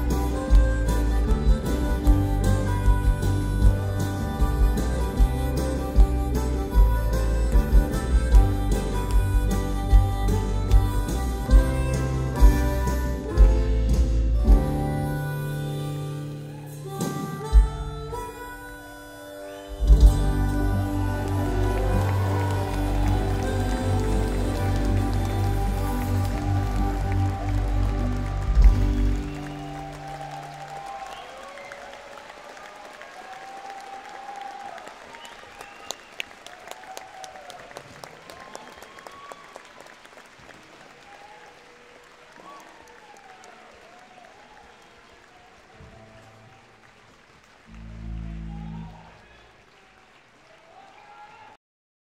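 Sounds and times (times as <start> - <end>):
audience cheering and applauding: 0.0 - 14.6, 16.1 - 17.5, 18.7 - 51.6
live band playing: 0.0 - 31.2
low note from stage: 47.7 - 49.2.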